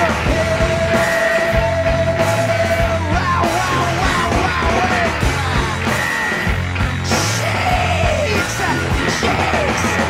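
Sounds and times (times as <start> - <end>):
drums hitting: 0.0 - 10.0
punk rock song with yelled vocal: 0.0 - 10.0.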